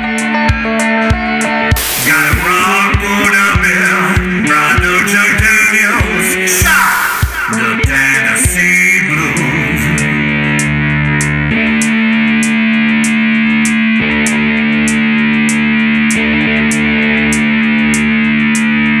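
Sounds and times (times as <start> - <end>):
amplified cigar box guitar blues: 0.0 - 19.0
light ticking beat: 0.2 - 19.0.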